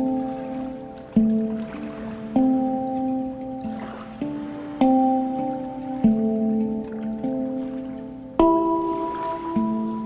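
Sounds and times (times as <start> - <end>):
handpan notes ringing: 0.0 - 10.0.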